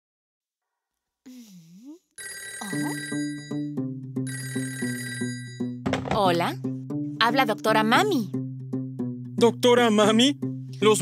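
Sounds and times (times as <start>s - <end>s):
cartoon telephone ringing: 2.2s - 3.7s, 4.3s - 5.8s
children's song music: 5.8s - 11.0s.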